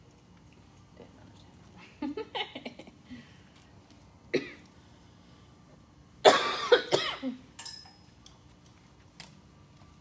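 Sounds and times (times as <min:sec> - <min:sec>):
person coughing: 0:04.3 - 0:04.7, 0:06.2 - 0:07.5.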